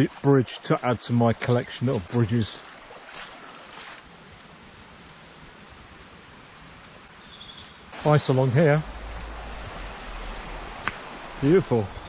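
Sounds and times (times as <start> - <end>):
stream running over stones: 0.0 - 12.0.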